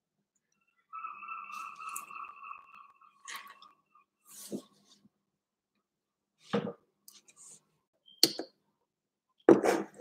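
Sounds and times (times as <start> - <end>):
steady high-pitched tone: 0.4 - 4.6.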